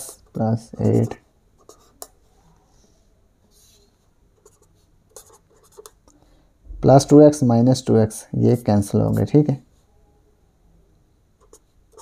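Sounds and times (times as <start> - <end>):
marker writing on paper: 0.3 - 2.2, 4.4 - 6.0, 11.4 - 12.0.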